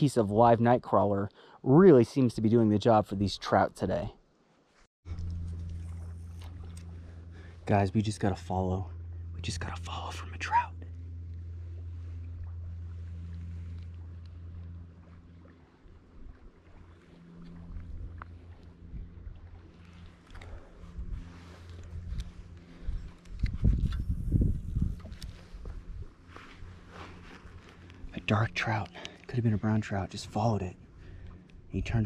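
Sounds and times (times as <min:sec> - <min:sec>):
wind buffeting microphone: 0:20.5 - 0:26.9.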